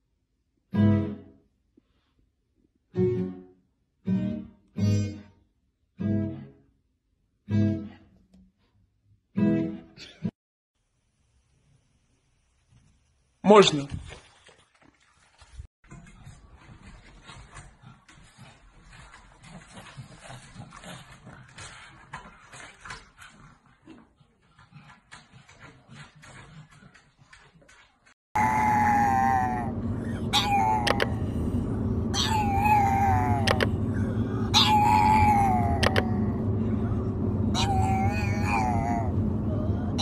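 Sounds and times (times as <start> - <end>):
dog howling: 28.4 - 40.0
car hum on the road: 28.6 - 40.0.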